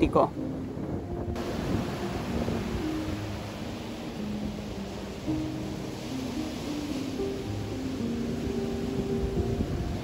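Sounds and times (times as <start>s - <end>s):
soft background music: 0.0s - 10.0s
wind on microphone: 0.0s - 10.0s
surf breaking on beach: 1.3s - 10.0s.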